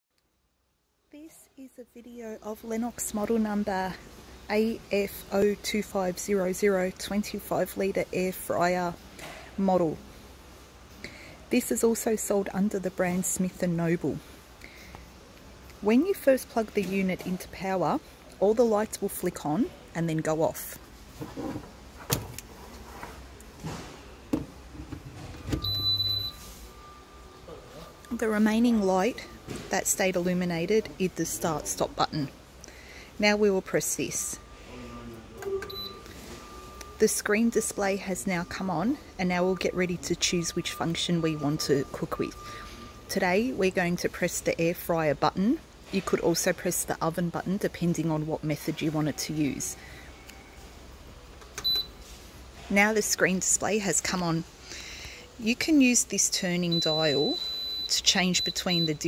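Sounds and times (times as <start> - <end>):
high-pitched electronic beep: 35.5 - 37.8.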